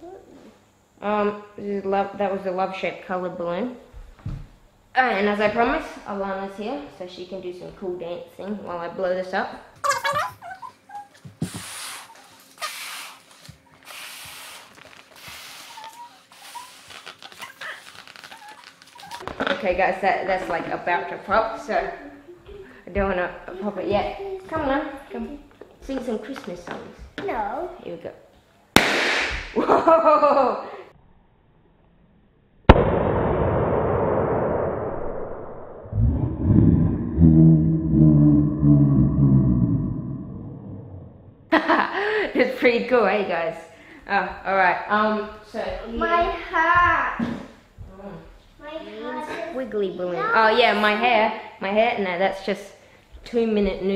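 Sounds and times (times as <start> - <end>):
balloon bursting bang: 28.8 - 29.6, 32.7 - 35.0
low droning hum: 32.7 - 41.6.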